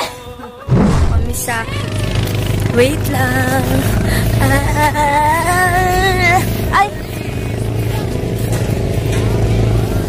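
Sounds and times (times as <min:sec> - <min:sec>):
small engine humming: 0:00.7 - 0:10.0.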